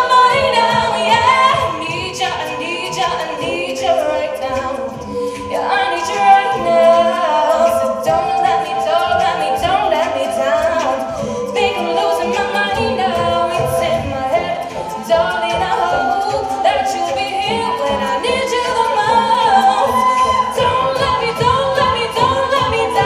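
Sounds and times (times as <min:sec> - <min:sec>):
vocal percussion beat: 0:00.0 - 0:23.0.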